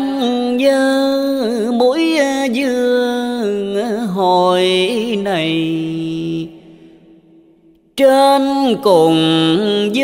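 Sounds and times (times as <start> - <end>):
person chanting verse: 0.0 - 10.0.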